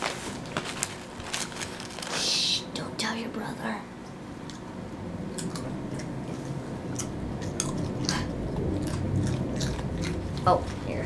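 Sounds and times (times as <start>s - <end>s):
dog crunching a potato chip: 0.0s - 2.3s, 7.0s - 11.0s
soft low rumble: 0.1s - 11.0s.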